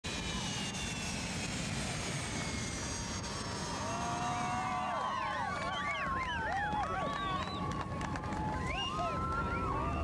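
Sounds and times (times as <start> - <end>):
jet engines running: 0.0 - 10.0.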